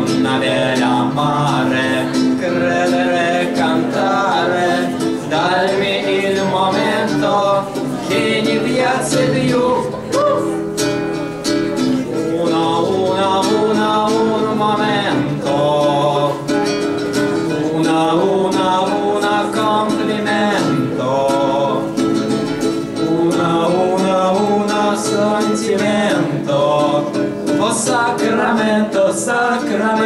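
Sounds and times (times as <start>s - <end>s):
boys singing: 0.0s - 10.6s, 12.0s - 22.2s, 22.8s - 30.0s
acoustic guitars: 0.0s - 30.0s.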